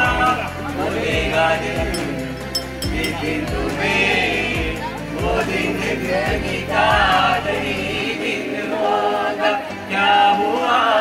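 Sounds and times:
voices singing together: 0.0 - 11.0.

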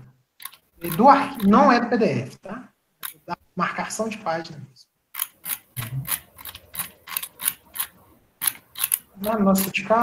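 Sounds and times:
sharp computer clicks: 0.4 - 1.6, 3.0 - 3.3, 5.1 - 9.8.

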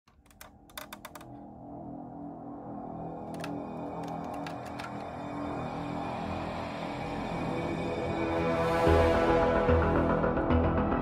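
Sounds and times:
soft ambient background music: 0.2 - 11.0
sharp clicks: 3.4 - 5.1.

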